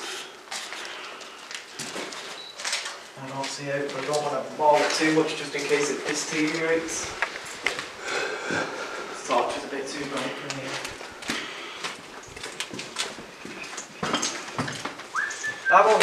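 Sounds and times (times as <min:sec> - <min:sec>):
footsteps on debris: 0:00.5 - 0:16.0
men talking in echoey corridor: 0:03.2 - 0:07.2, 0:08.0 - 0:11.0.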